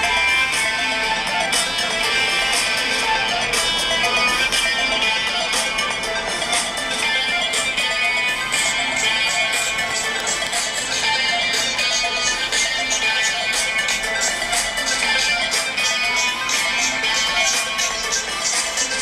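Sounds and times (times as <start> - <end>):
guitar-like lead loop: 0.0 - 19.0
looped electronic beat: 0.0 - 19.0.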